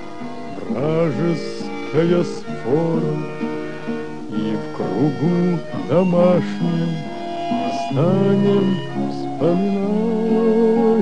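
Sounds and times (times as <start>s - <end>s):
instrumental accompaniment: 0.0s - 11.0s
man singing slow song: 0.3s - 11.0s.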